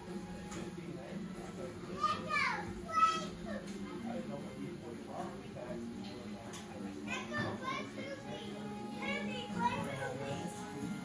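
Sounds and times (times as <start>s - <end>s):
children talking and squealing: 1.9s - 3.8s
music playing: 4.0s - 11.0s.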